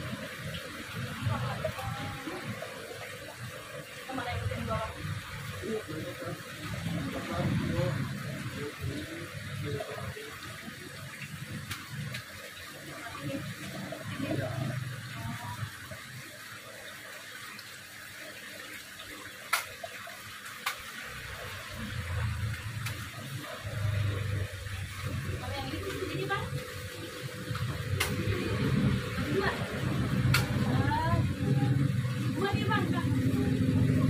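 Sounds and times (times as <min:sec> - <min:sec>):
aquarium water splashing: 0:00.0 - 0:34.0.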